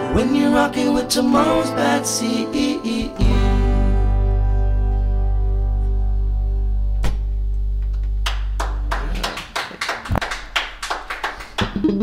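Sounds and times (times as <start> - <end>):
people clapping: 7.8 - 12.0.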